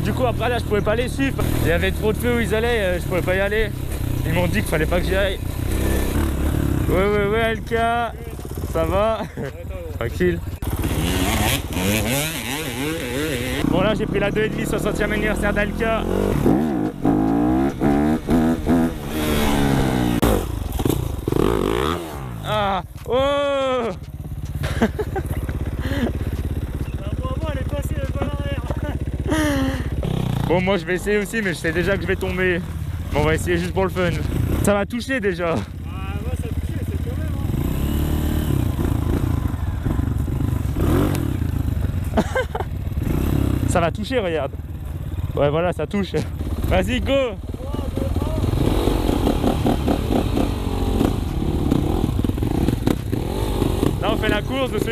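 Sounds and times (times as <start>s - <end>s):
dirt bike engine revving: 0.0s - 54.9s.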